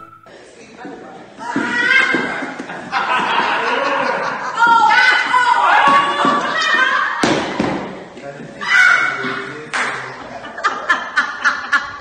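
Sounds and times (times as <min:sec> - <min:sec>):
whistled tune over music: 0:00.0 - 0:00.3.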